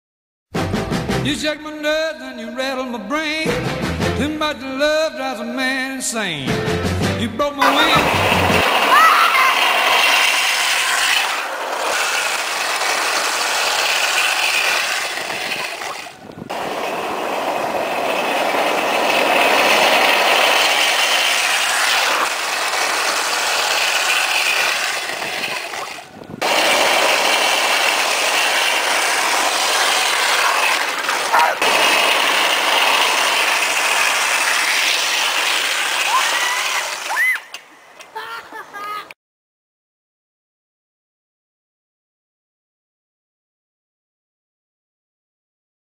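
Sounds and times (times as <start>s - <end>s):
child laughing: 7.6s - 9.8s, 14.6s - 16.2s, 24.6s - 26.1s, 36.1s - 39.2s
children's voices: 7.6s - 10.1s, 14.6s - 16.2s, 24.5s - 26.1s
wheels grinding rattle on road: 7.6s - 37.1s.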